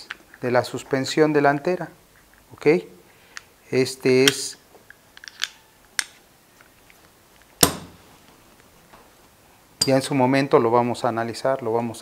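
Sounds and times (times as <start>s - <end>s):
metal parts clicking: 4.2s - 6.2s.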